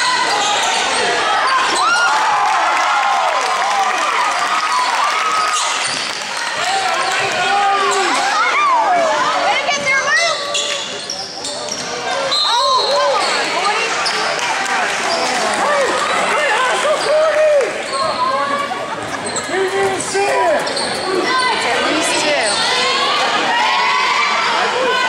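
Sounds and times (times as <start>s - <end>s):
voices of players and spectators: 0.0s - 25.0s.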